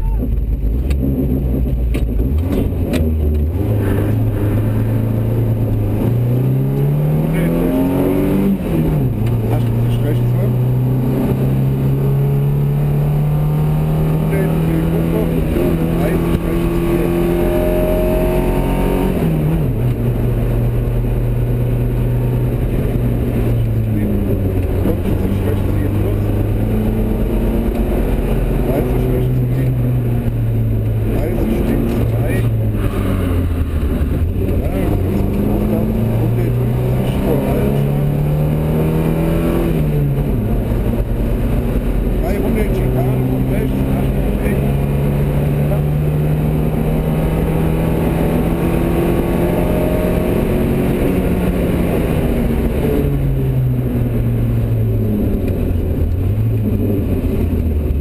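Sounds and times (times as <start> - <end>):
car engine accelerating: 0.0 - 58.0.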